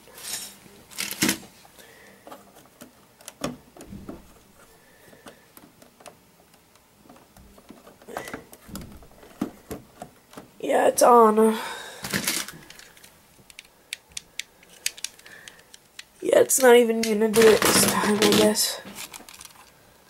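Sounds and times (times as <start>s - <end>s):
plastic lego pieces clicking: 12.2s - 19.7s.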